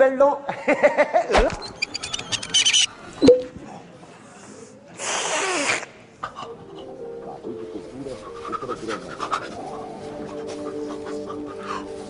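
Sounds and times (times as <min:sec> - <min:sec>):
quiet background music: 0:06.1 - 0:12.0.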